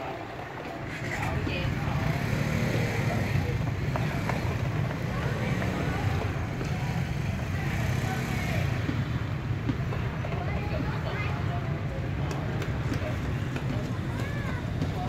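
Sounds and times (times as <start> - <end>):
street traffic rumble: 0.0 - 15.0.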